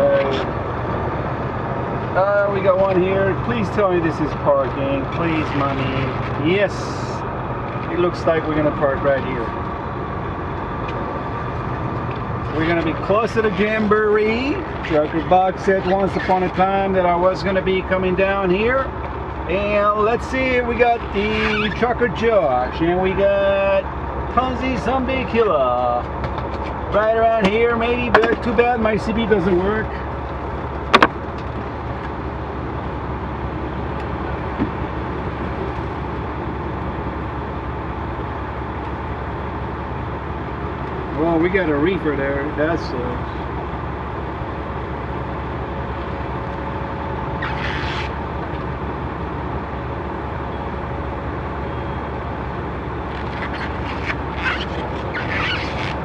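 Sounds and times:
diesel truck engine rumble: 0:00.0 - 0:56.0
faint steady whine: 0:00.0 - 0:56.0.

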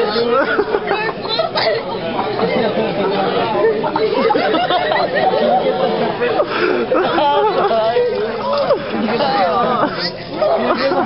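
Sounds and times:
young voices chattering: 0:00.0 - 0:11.0.

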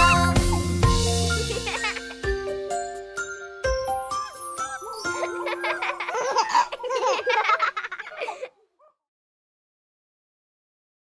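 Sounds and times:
children giggling and laughing: 0:01.4 - 0:02.3, 0:04.3 - 0:08.8.

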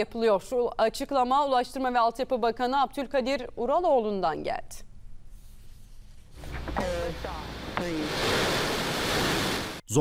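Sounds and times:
rocket engines roaring: 0:06.4 - 0:09.8.

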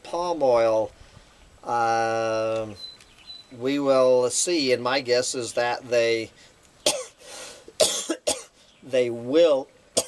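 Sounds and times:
man coughing: 0:06.9 - 0:07.2, 0:07.8 - 0:08.6.

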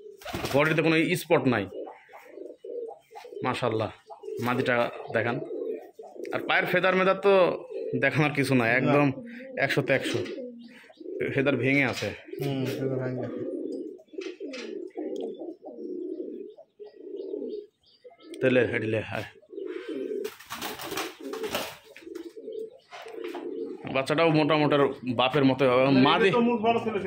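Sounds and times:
pigeons cooing: 0:00.0 - 0:27.0.

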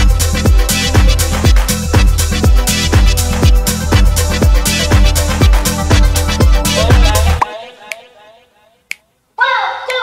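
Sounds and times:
show soundtrack music: 0:00.0 - 0:08.2.

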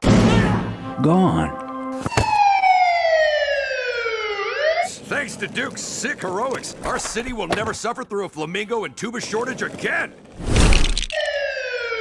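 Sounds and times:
police siren wailing: 0:01.9 - 0:05.0, 0:11.1 - 0:12.0.

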